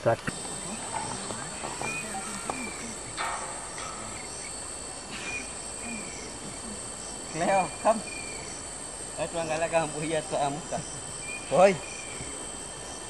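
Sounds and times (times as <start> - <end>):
high-pitched insect drone: 0.2 - 13.0.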